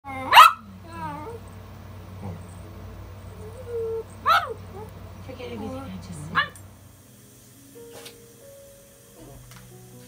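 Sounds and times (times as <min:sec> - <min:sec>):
dog whining: 0:00.0 - 0:01.5, 0:03.3 - 0:04.9, 0:09.2 - 0:09.5
small dog yapping: 0:00.1 - 0:01.4, 0:03.6 - 0:04.9.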